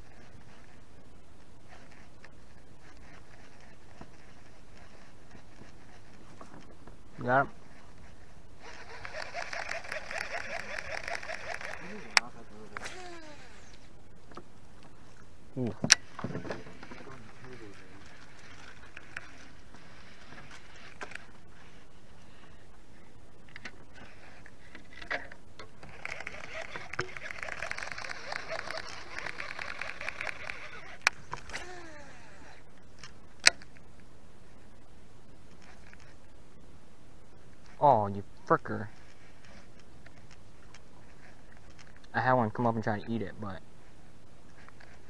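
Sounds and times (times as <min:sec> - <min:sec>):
fishing reel whirring: 0:08.6 - 0:13.9, 0:16.7 - 0:21.3, 0:25.8 - 0:32.7
sharp clicks: 0:08.7 - 0:14.9, 0:25.6 - 0:32.0.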